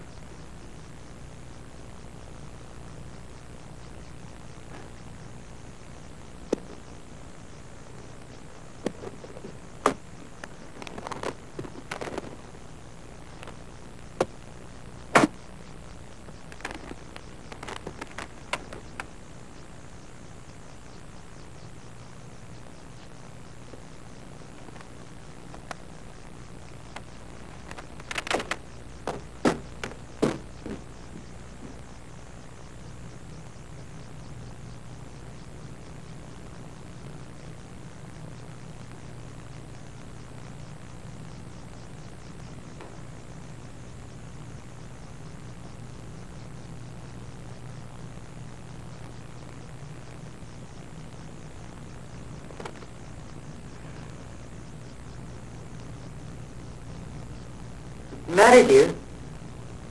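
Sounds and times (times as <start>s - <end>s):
tape hiss: 0.0s - 59.9s.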